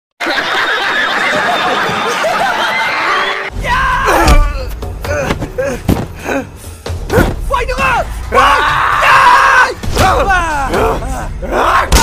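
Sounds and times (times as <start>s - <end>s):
man shouting: 3.6s - 4.7s, 7.1s - 12.0s.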